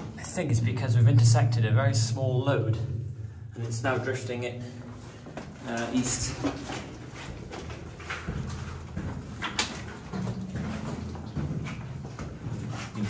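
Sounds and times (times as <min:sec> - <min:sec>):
footsteps on rock and rubble: 0:03.6 - 0:13.0.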